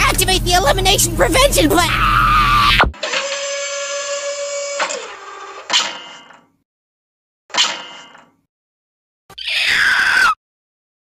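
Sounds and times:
cartoon character screaming: 0:01.8 - 0:02.9, 0:09.3 - 0:10.4.

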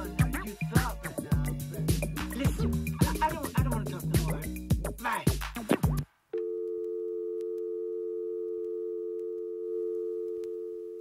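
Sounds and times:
electronic dance track: 0:00.0 - 0:06.0
telephone dial tone: 0:06.4 - 0:11.0.

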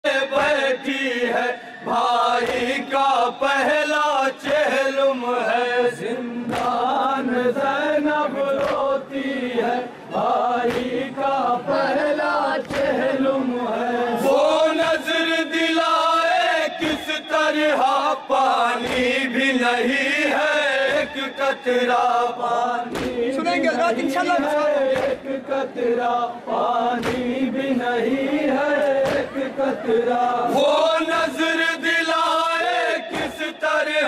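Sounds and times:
men chanting a mournful lament: 0:00.0 - 0:34.0
palms slapping chests: 0:22.9 - 0:23.3, 0:27.0 - 0:27.4.

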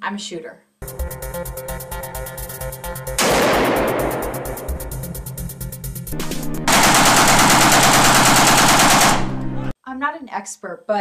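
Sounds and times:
background music: 0:00.8 - 0:09.8
rapid gunfire: 0:03.2 - 0:05.0, 0:06.7 - 0:09.4.

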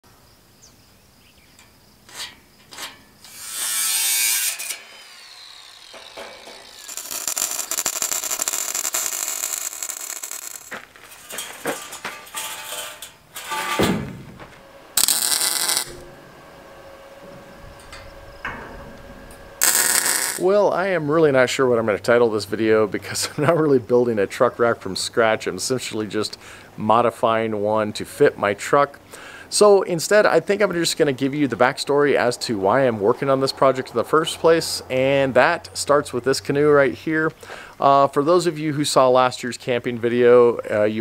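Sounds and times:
power tool cutting steel: 0:02.1 - 0:13.8, 0:15.0 - 0:16.2, 0:19.6 - 0:20.5
welding hiss: 0:03.2 - 0:13.6, 0:15.0 - 0:16.0, 0:19.6 - 0:20.5
metal knocks: 0:11.1 - 0:14.5.

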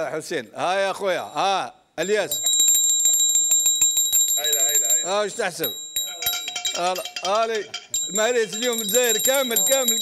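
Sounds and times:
high bell-like ringing: 0:01.2 - 0:10.0
man's voice: 0:04.4 - 0:10.0
pestle clinking in brass mortar: 0:05.6 - 0:10.0.

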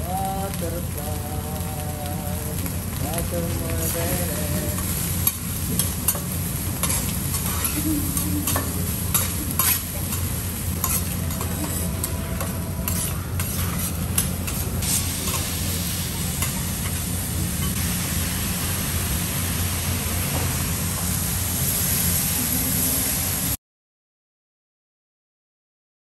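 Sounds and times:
food sizzling on a griddle: 0:00.0 - 0:23.6
cleaver and spatula scraping steel: 0:06.8 - 0:07.8, 0:08.5 - 0:15.4.

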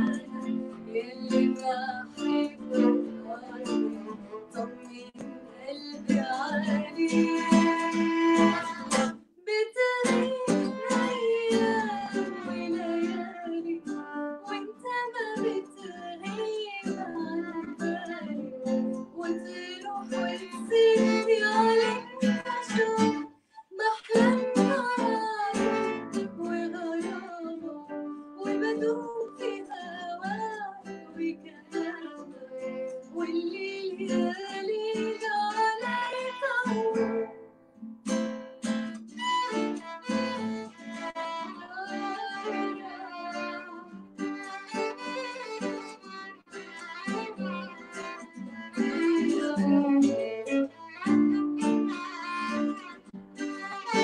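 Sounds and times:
violin: 0:00.0 - 0:09.2, 0:09.8 - 0:37.5, 0:38.1 - 0:54.0
woman singing: 0:00.0 - 0:37.4, 0:41.1 - 0:44.0, 0:47.0 - 0:52.9
acoustic guitar: 0:00.0 - 0:54.0.

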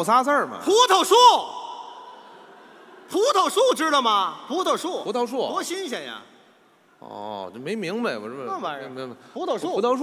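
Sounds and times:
faint hall hush: 0:00.0 - 0:10.0.

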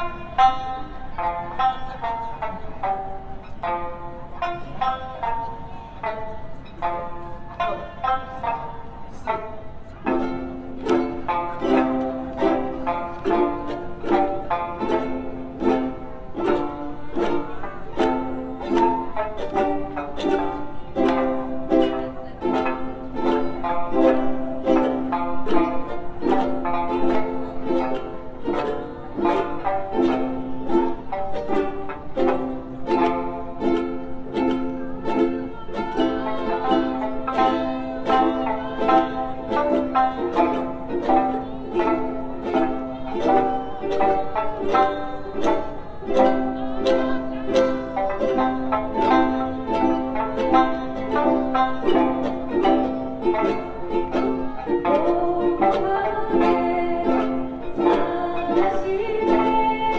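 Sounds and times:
plucked string ensemble melody: 0:00.0 - 0:59.9.

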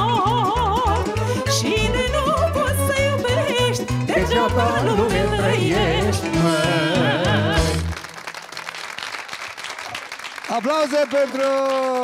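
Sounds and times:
folk band with violin: 0:00.0 - 0:07.9
woman singing with vibrato: 0:00.0 - 0:07.9
pulsing bass: 0:00.0 - 0:08.0
man singing with vibrato: 0:03.8 - 0:08.0.

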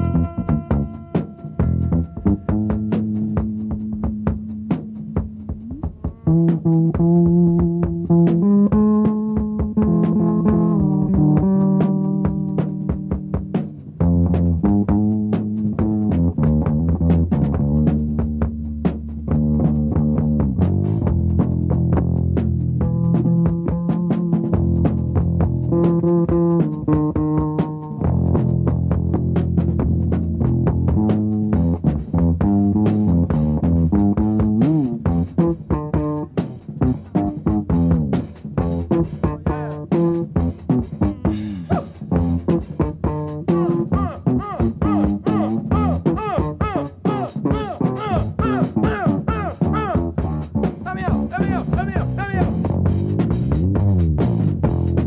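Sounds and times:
electric guitar solo: 0:00.0 - 0:03.1
electric guitar: 0:00.0 - 0:18.4, 0:19.3 - 0:55.0
electric bass line: 0:00.0 - 0:55.0
steady drum beat: 0:00.0 - 0:55.0.

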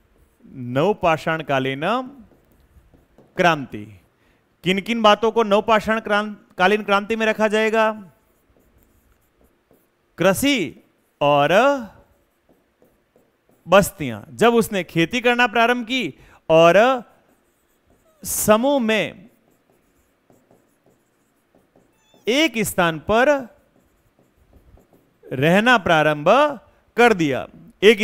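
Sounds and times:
stylus scratching and tapping screen: 0:00.0 - 0:04.0, 0:04.8 - 0:28.0
marker writing on whiteboard: 0:00.0 - 0:04.1, 0:04.7 - 0:28.0.

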